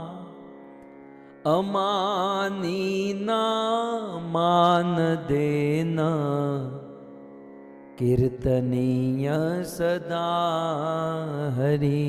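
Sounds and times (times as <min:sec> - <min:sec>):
man chanting: 0:00.0 - 0:00.4, 0:01.5 - 0:07.1, 0:08.0 - 0:12.0.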